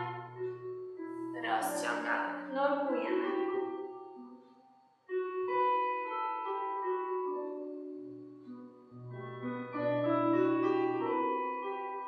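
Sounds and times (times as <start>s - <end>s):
slow piano music: 0.0s - 12.0s.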